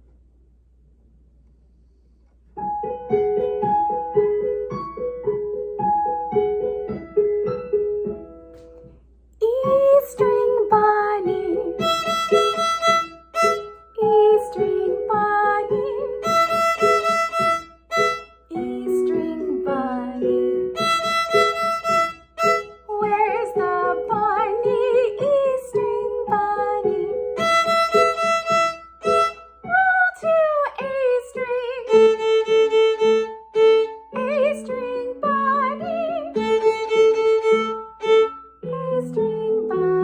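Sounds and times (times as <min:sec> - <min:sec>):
violin playing simple tune: 0:09.6 - 0:29.8, 0:31.4 - 0:40.0.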